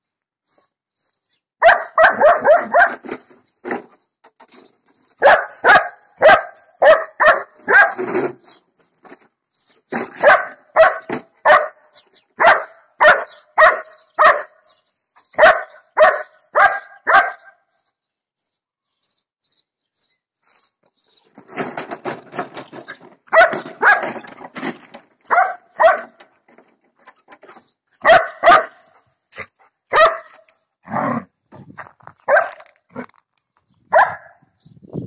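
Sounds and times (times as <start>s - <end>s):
dog barking: 1.6s - 3.0s, 5.2s - 8.1s, 10.2s - 14.6s, 15.4s - 17.6s, 23.3s - 24.2s, 25.3s - 26.2s, 28.0s - 31.1s, 32.3s - 32.6s, 33.9s - 34.4s.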